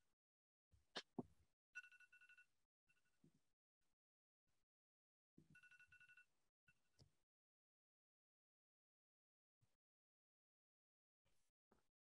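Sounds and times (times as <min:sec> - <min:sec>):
faint electronic ringing tone: 0:01.8 - 0:03.2, 0:05.5 - 0:07.0.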